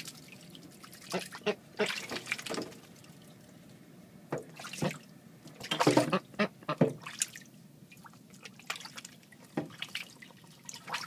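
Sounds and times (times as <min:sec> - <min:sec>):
ducks splashing in water: 0:00.0 - 0:03.6, 0:04.4 - 0:11.0.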